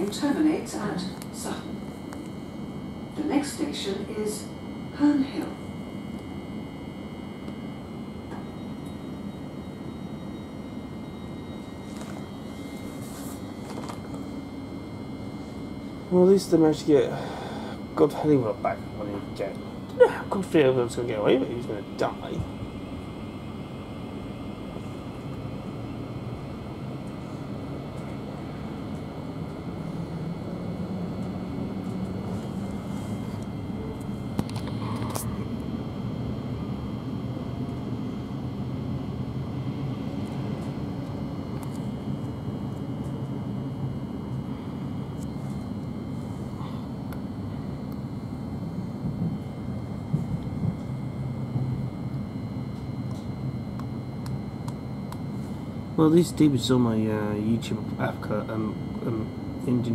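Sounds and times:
faint steady high tones: 0.0s - 36.1s, 50.9s - 59.9s.

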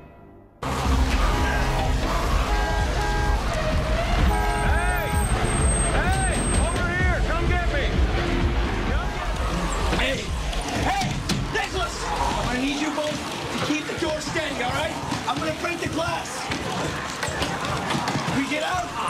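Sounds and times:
music: 0.0s - 12.4s.

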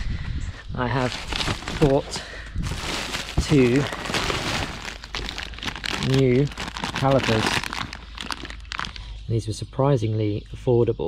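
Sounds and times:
bubble wrap and plastic crinkling: 0.9s - 9.1s.

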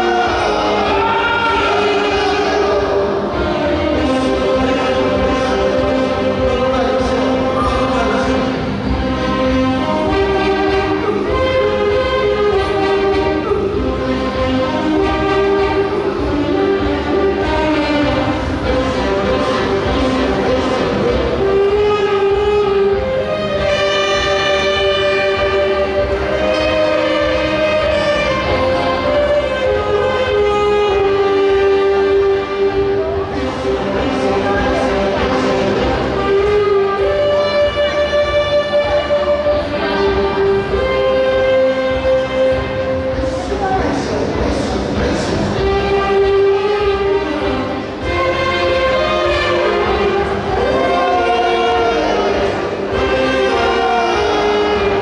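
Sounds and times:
saxophone ensemble playing: 0.0s - 55.0s.

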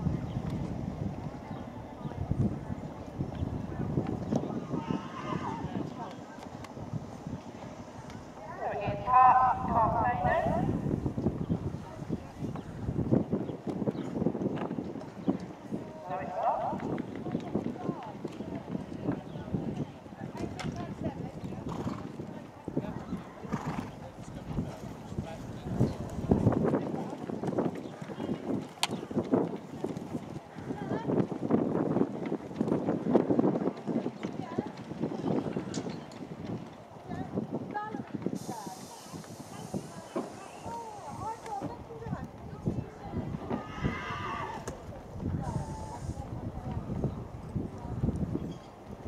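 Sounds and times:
horse hooves on sand: 0.0s - 49.0s.

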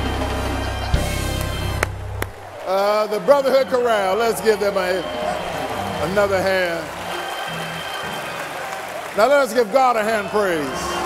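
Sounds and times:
gospel band holding a chord: 0.0s - 9.2s.

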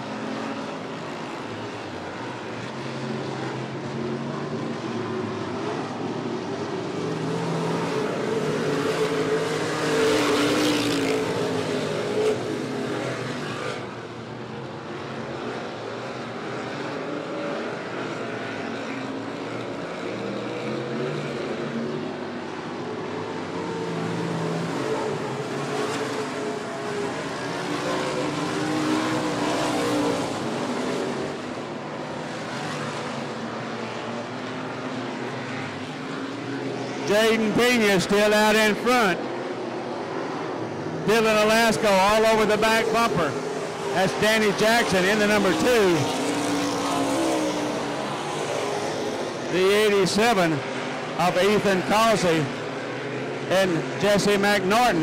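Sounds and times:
race car engines under load: 0.0s - 55.0s.

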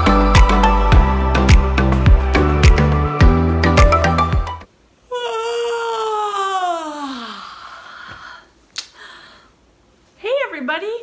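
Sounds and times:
woman yawning: 5.1s - 9.4s.

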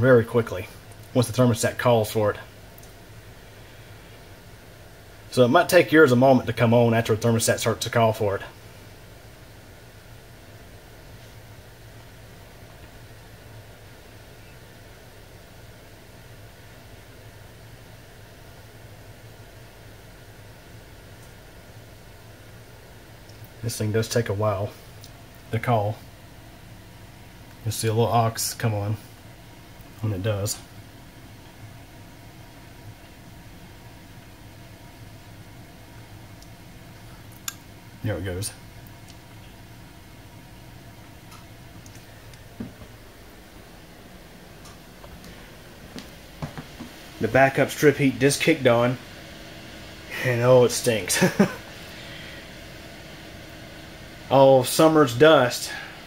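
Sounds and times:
air-handler fan hum and hiss: 0.0s - 56.0s.

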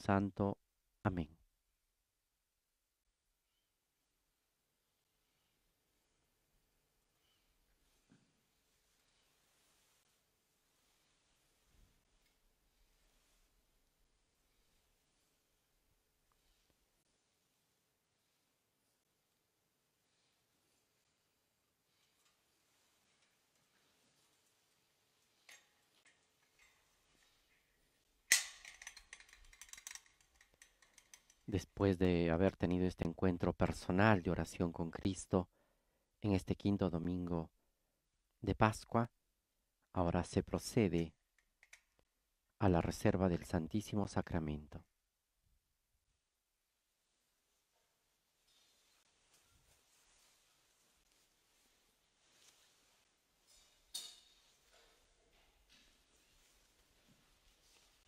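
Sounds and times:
glass case clicking and rattling: 28.3s - 31.4s
metal clicks: 28.3s - 31.5s.

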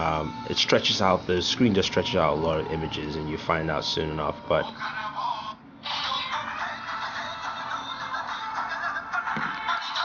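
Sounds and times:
song from small speaker: 0.0s - 10.0s.

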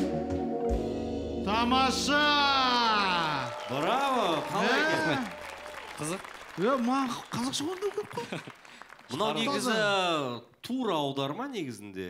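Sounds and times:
men talking: 1.5s - 8.5s, 9.1s - 12.0s
audience applauding: 2.0s - 10.4s.

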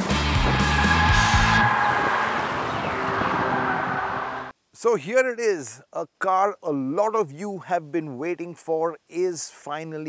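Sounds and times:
car at speed: 0.0s - 4.5s
high tyre squeal: 0.2s - 4.5s.

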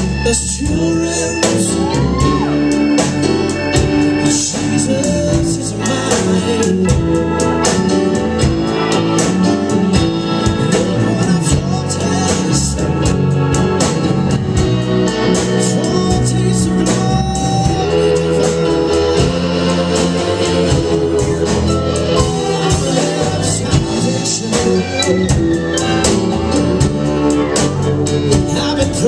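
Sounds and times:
drums: 0.0s - 29.0s
electric guitar: 0.0s - 29.0s
keyboard: 0.0s - 29.0s
live band playing blues: 0.0s - 29.0s.

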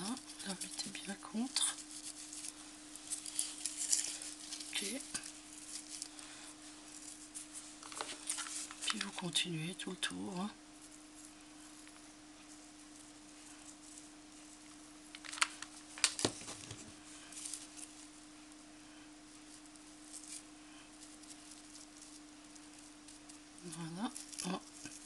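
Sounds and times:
steady low hum: 0.0s - 25.0s
twine rustling: 0.0s - 25.0s.

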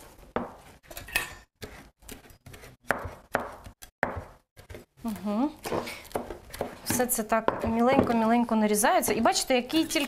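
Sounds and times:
knife chopping on cutting board: 1.6s - 4.8s.

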